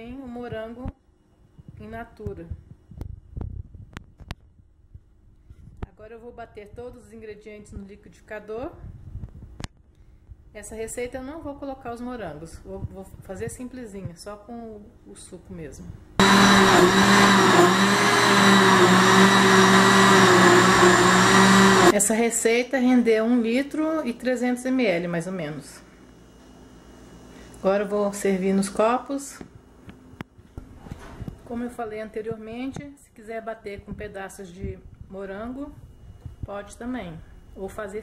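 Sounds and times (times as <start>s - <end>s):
electric blender running: 16.2s - 22.0s.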